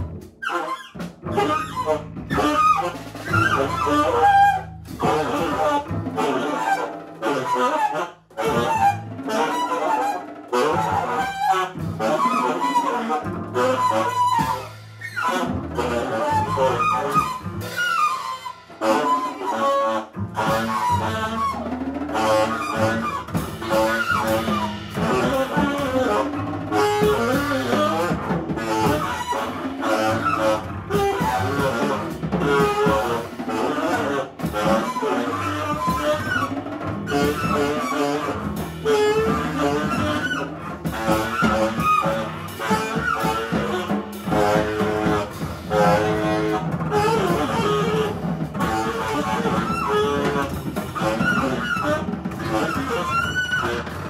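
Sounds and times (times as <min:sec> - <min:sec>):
busy drumming: 0:00.0 - 0:54.0
tenor saxophone wavering line: 0:00.5 - 0:54.0
sustained double bass notes: 0:20.1 - 0:32.4.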